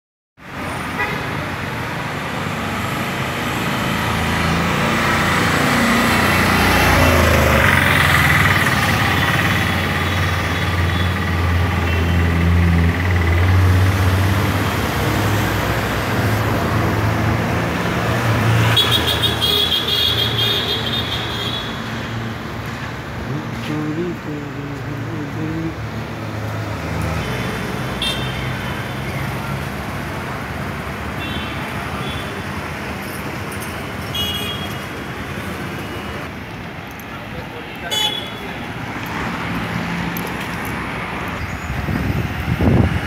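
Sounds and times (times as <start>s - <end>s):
vehicle engines passing: 0.4s - 43.0s.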